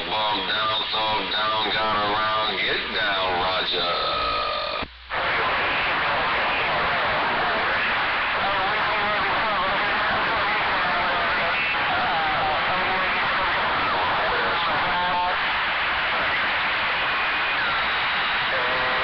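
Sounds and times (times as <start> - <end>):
garbled radio voices: 0.0 - 19.0
radio static hiss: 0.0 - 19.0.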